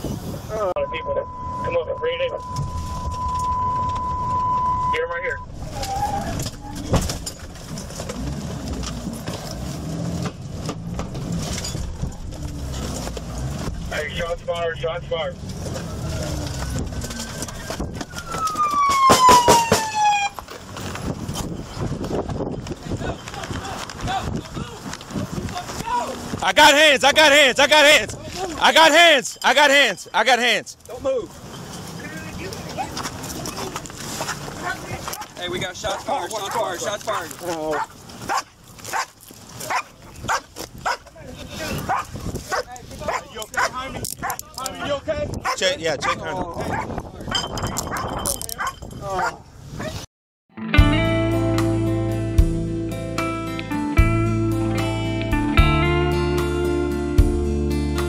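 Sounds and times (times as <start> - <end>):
road and vehicle noise: 0.0 - 50.1
police siren falling in pitch: 0.8 - 5.0, 15.9 - 20.4
dog barking: 35.9 - 39.1, 39.7 - 41.0, 41.9 - 44.4, 45.4 - 46.9, 47.9 - 50.0.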